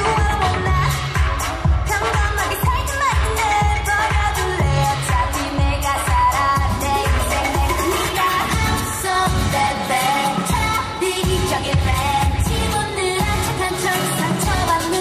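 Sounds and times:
pop song with singing: 0:00.0 - 0:15.0.

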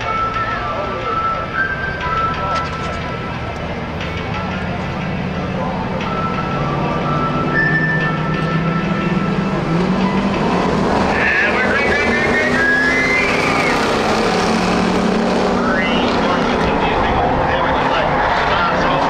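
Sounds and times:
race car engines running: 0:00.0 - 0:19.0.

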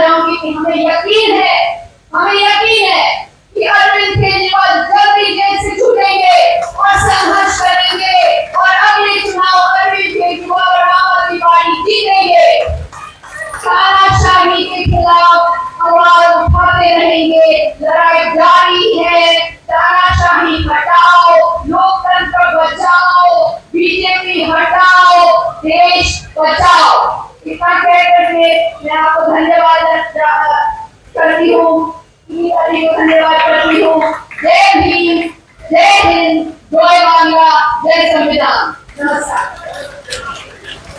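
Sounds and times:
woman calling over microphone: 0:00.0 - 0:39.6
woman singing over loudspeakers: 0:00.0 - 0:39.8
low thumps: 0:04.0 - 0:04.6, 0:13.7 - 0:15.4.

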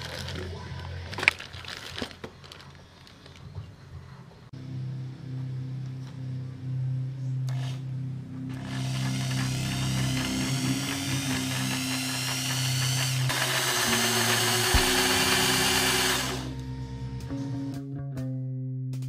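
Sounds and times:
background music: 0:04.6 - 0:19.0
electric drill boring into wood: 0:08.6 - 0:16.6.

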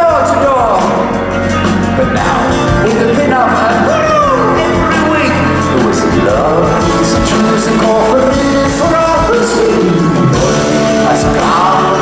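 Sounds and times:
man singing: 0:00.0 - 0:12.0
rock band playing live: 0:00.0 - 0:12.0.

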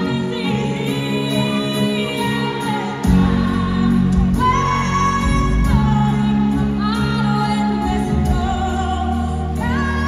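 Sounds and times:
live band accompaniment: 0:00.0 - 0:10.0.

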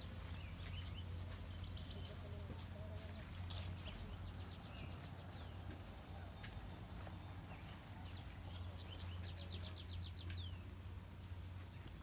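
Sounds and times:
bird singing: 0:00.0 - 0:10.8.

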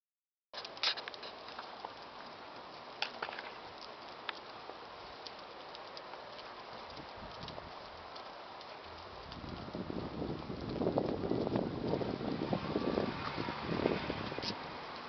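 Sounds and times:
footsteps: 0:00.6 - 0:15.0.

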